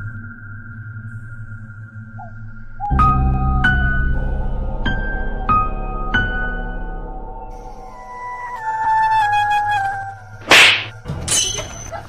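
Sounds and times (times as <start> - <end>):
whip-like swish: 10.4 - 11.0.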